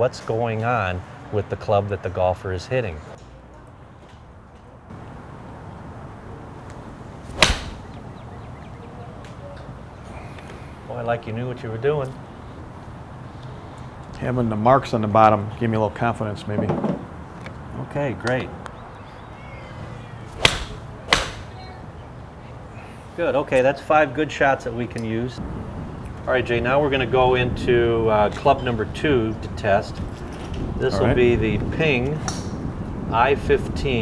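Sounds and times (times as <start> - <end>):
faint outdoor background: 0.0 - 34.0
golf club striking ball: 7.3 - 8.0, 20.3 - 21.6.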